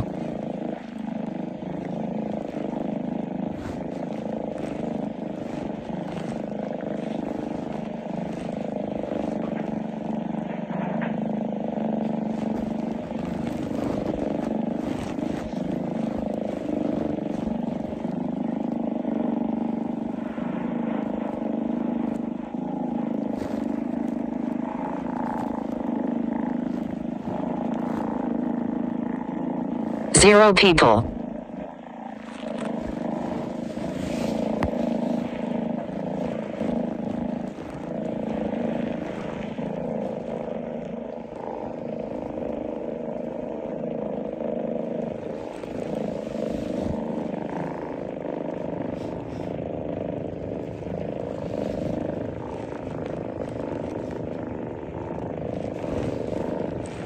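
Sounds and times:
faint rustling: 0:00.0 - 0:30.2, 0:31.1 - 0:57.0
low mechanical drone: 0:00.0 - 0:57.0.

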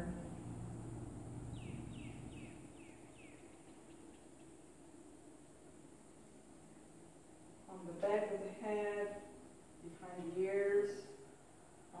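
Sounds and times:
bird chirping: 0:01.4 - 0:05.0.

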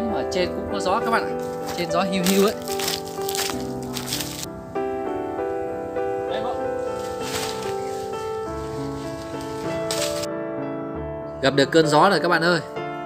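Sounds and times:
keyboard melody of held notes: 0:00.0 - 0:13.0.

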